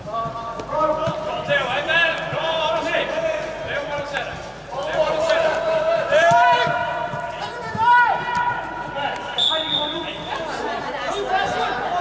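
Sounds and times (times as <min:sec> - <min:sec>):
players' voices echoing in a hall: 0:00.0 - 0:12.0
loud shout: 0:05.2 - 0:08.8
referee's whistle blast: 0:09.4 - 0:10.1.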